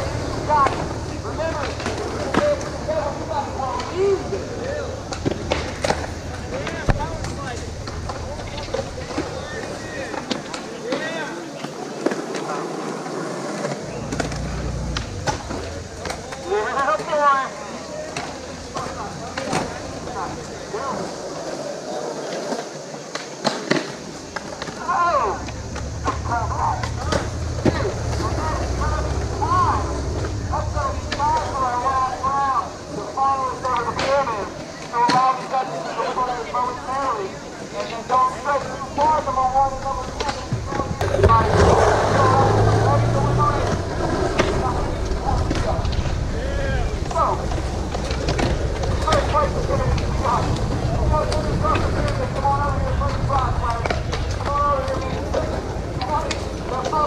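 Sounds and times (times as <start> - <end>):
people talking: 0.0 - 57.0
skateboards rolling on concrete: 0.0 - 57.0
skateboard clacks on concrete: 5.0 - 29.6.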